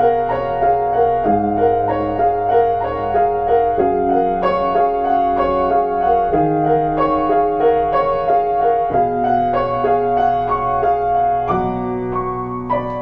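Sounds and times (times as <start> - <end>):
piano repeating figure: 0.0 - 13.0.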